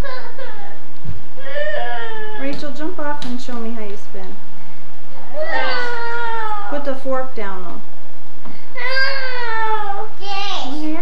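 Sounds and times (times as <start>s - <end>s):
toddler whining cries: 1.4s - 2.6s, 5.3s - 6.9s, 8.8s - 10.5s.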